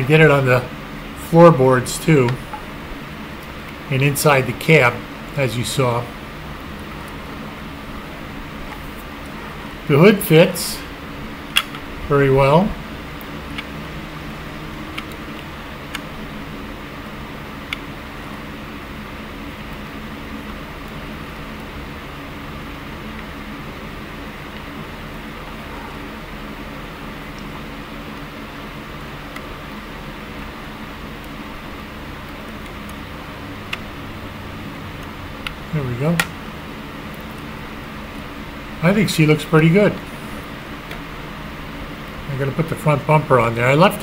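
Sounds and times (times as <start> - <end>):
electric fan humming: 0.0 - 44.0.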